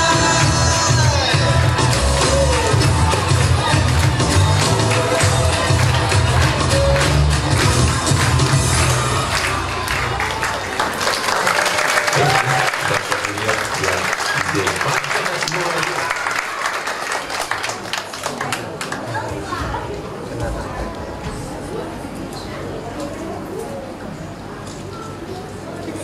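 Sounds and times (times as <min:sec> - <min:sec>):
music with heavy bass beat: 0:00.0 - 0:09.2
audience voices: 0:00.0 - 0:26.0
audience applause: 0:01.6 - 0:19.3.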